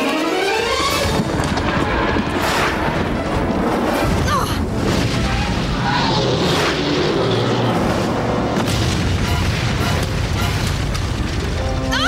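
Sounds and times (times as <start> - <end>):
dramatic action soundtrack music: 0.0 - 12.0
loud booming sound effects: 0.9 - 11.9.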